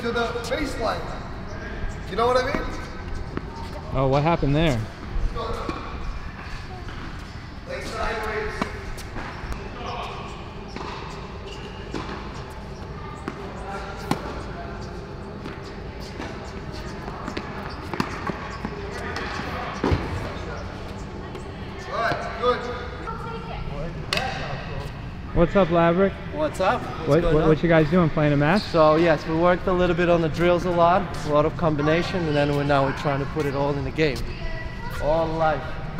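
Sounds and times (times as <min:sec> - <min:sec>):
players' voices: 0:00.0 - 0:35.9
tennis balls bouncing: 0:04.9 - 0:22.3
tennis balls hit by racquets: 0:05.0 - 0:22.4, 0:24.1 - 0:24.7.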